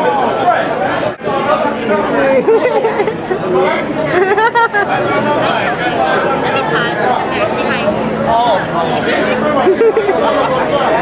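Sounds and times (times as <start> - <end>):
overlapping conversation: 0.2 - 11.0.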